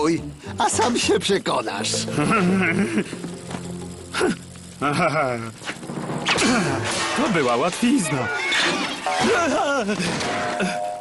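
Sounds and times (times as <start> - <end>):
cartoon voice sounds: 8.0 - 9.5.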